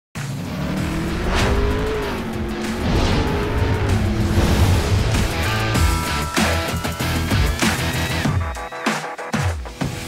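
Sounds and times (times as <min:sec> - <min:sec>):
race car engine revving: 0:00.2 - 0:06.7
music: 0:00.2 - 0:10.0
whoosh: 0:00.8 - 0:06.1.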